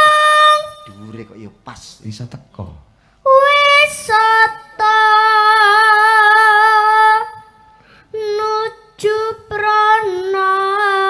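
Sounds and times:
boy singing solo: 0.0 - 1.0.

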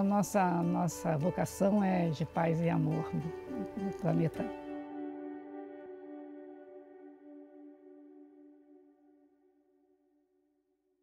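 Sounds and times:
ambient music chord: 0.6 - 10.2.

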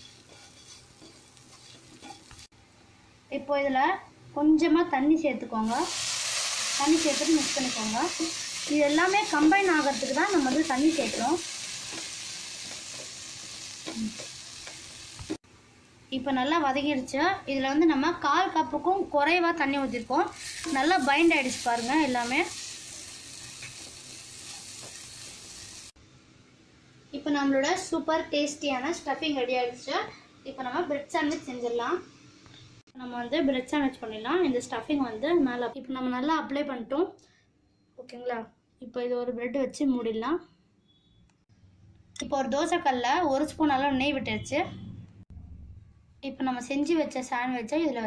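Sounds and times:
spoon scraping filling in pan: 0.0 - 2.5, 20.4 - 25.8
low frying sizzle: 0.0 - 3.0, 4.6 - 35.8.

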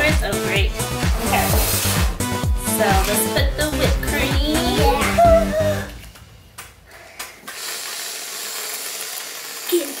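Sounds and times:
aerosol can spraying hiss: 1.2 - 2.1.

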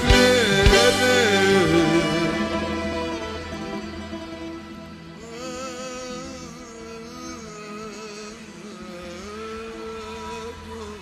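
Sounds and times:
live band music with held notes: 0.0 - 7.2.

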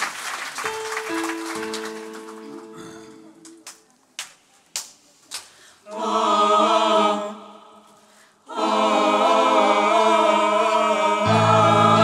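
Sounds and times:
mixed choir singing chords: 5.8 - 12.0.

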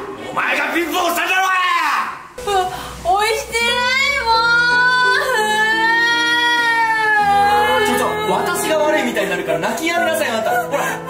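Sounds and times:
light background music: 2.4 - 11.0
woman wailing: 3.6 - 9.1.

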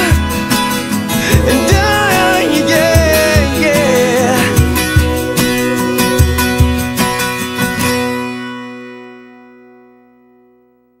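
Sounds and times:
acoustic guitar strumming chords: 0.0 - 9.4.

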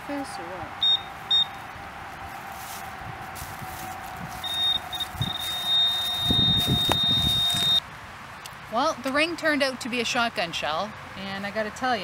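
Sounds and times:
rustling of leaves and soil: 0.0 - 9.6
pinpointer short beeps: 0.8 - 1.6, 4.4 - 7.8
pinpointer long steady tone: 4.4 - 7.8.

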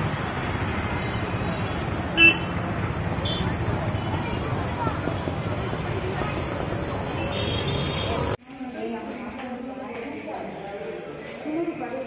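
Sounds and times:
road traffic rumble: 0.0 - 8.4
vehicle horn toot: 2.2 - 2.6.

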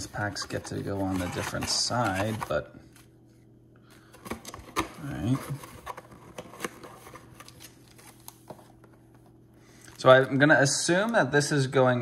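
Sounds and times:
cardboard box rustling: 0.3 - 2.6, 4.2 - 8.9.

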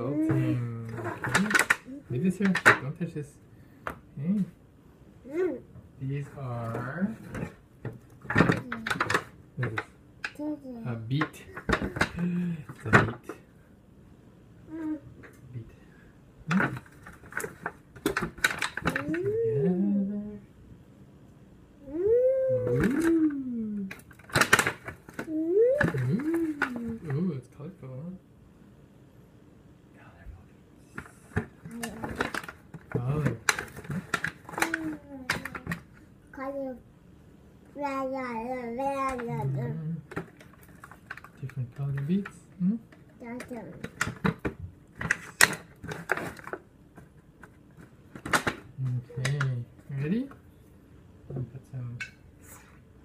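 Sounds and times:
person humming: 0.0 - 0.9, 19.0 - 20.4, 21.8 - 24.0, 25.3 - 27.1.

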